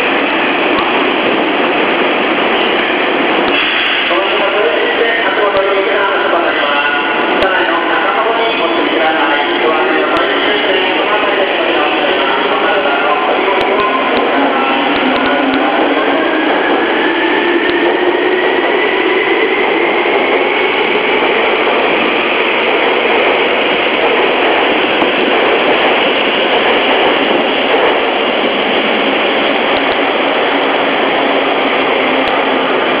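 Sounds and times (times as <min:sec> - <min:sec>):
electric train running noise: 0:00.0 - 0:33.0.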